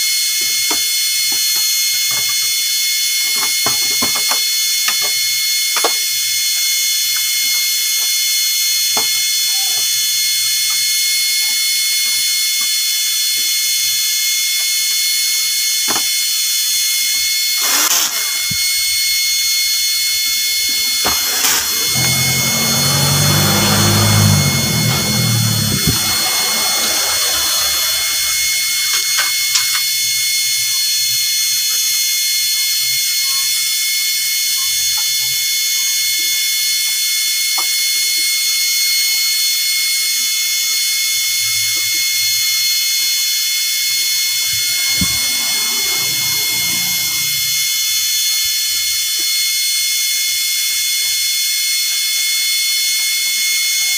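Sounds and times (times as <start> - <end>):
high-pitched electronic whine: 17.1 - 30.4, 41.4 - 48.4
low rumble: 20.7 - 29.2, 44.0 - 48.0.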